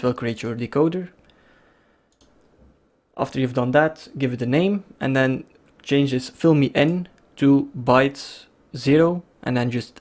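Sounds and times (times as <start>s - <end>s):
computer mouse clicks: 2.1s - 2.6s.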